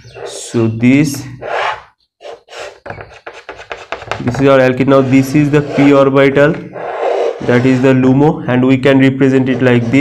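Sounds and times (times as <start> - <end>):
chalk scratching on blackboard: 1.4 - 8.3, 9.2 - 10.0.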